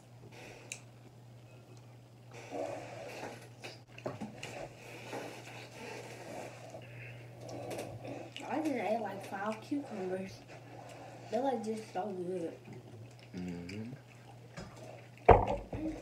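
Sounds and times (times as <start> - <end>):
low electrical hum: 0.0 - 16.0
close chewing with mouth sounds: 0.5 - 16.0.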